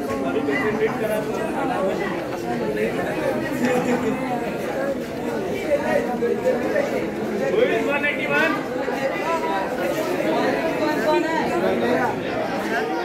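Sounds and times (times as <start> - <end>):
children chattering: 0.0 - 13.0.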